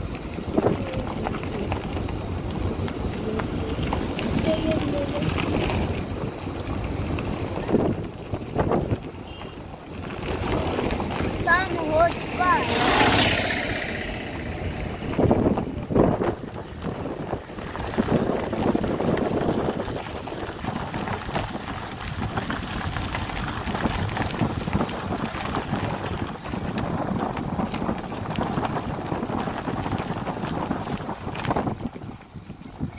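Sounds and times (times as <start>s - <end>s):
moving vehicle running noise: 0.0s - 32.9s
wind buffeting microphone: 0.0s - 32.9s.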